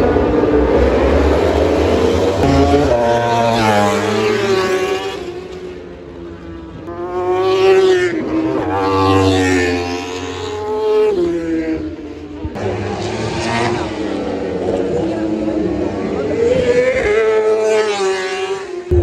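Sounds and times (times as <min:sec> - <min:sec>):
racing motorcycles passing by: 0:00.0 - 0:19.0.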